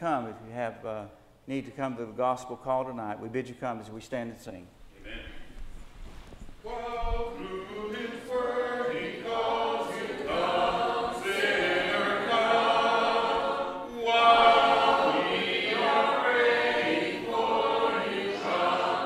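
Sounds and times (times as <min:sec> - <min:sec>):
congregation singing a hymn: 0:06.6 - 0:19.0.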